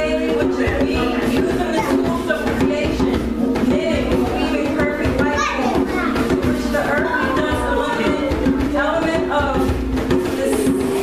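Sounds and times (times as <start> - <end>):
group of voices singing: 0.0 - 11.0
hand drum beat: 0.0 - 11.0.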